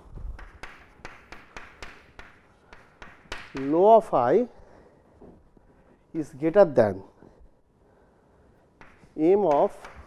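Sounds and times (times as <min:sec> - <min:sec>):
chalk tapping on blackboard: 0:00.3 - 0:04.1, 0:08.7 - 0:10.0.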